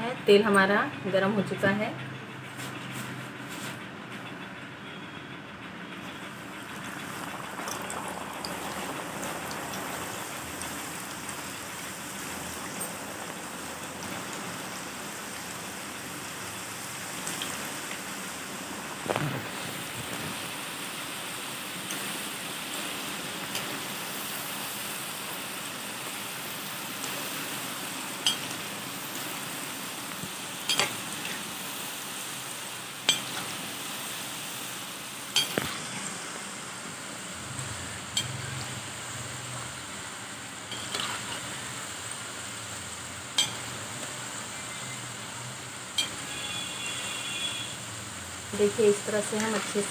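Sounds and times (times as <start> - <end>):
food sizzling in hot oil: 6.0 - 49.9.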